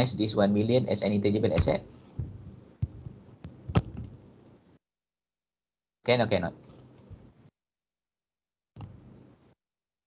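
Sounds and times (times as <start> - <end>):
soft knocks: 1.6 - 4.2.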